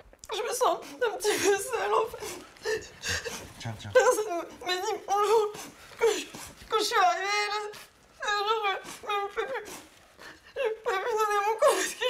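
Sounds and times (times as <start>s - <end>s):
woman crying: 0.3s - 12.0s.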